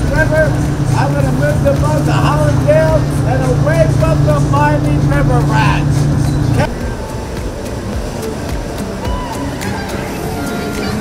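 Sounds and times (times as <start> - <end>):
steady low hum: 0.0 - 10.9
faint voices: 0.0 - 11.0
motor yacht engine: 0.0 - 11.0
music: 0.0 - 11.0.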